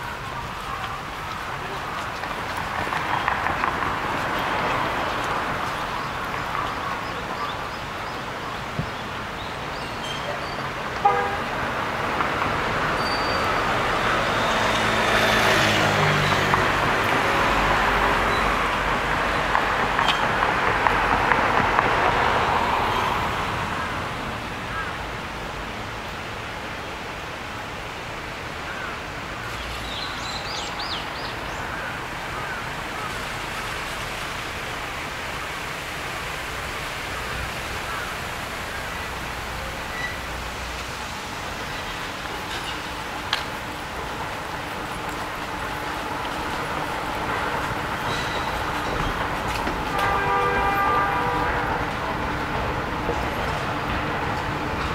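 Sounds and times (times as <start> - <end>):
road vehicle passing by: 0.0 - 28.6, 29.2 - 54.9
background traffic: 0.0 - 54.9.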